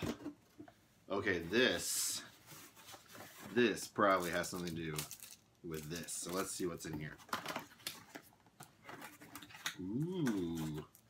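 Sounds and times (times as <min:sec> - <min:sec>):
paper packaging crinkling: 0:02.5 - 0:11.0.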